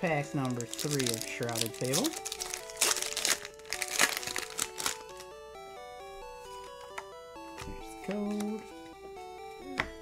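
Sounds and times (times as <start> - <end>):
background music with stepped notes: 0.0 - 10.0
foil wrapper crinkling: 0.2 - 5.3.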